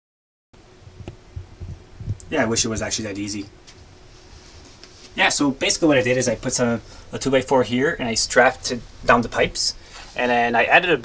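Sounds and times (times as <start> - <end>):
faint steady hum: 0.6 - 11.0.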